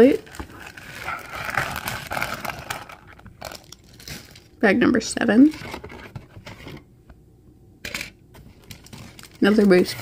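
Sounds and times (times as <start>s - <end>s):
plastic bag crinkling: 0.0s - 4.6s, 8.5s - 10.0s.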